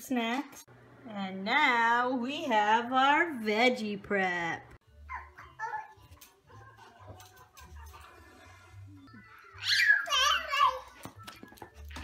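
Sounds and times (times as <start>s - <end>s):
toddler squealing: 9.3s - 10.7s.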